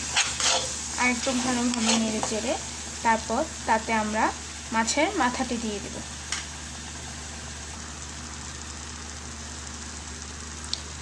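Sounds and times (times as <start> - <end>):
masala sizzling in oil: 0.0 - 11.0
small click: 10.7 - 10.9.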